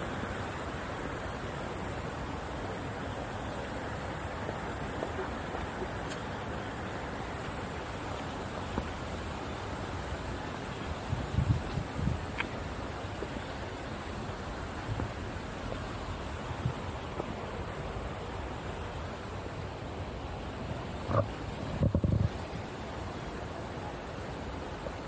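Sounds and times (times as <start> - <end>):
outdoor background hiss: 0.0 - 25.0
wind bumps on microphone: 11.0 - 12.4, 21.0 - 22.5.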